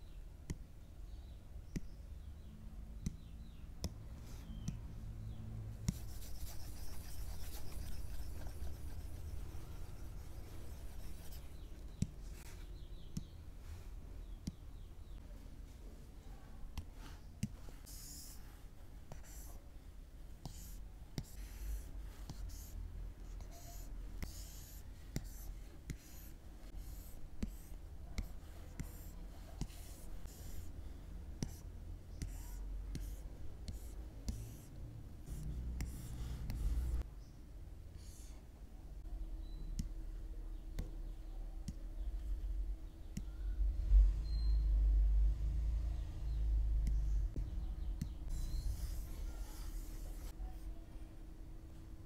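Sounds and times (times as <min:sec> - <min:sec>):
stylus scratching across screen: 0:05.8 - 0:12.7, 0:17.1 - 0:19.6, 0:20.4 - 0:30.7, 0:31.4 - 0:37.1, 0:46.8 - 0:50.7.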